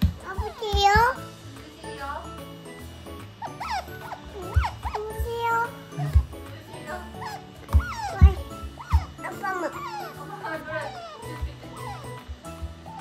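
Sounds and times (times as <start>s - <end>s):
otter squeaking: 0.0s - 1.2s, 3.3s - 13.0s
background music: 0.0s - 13.0s.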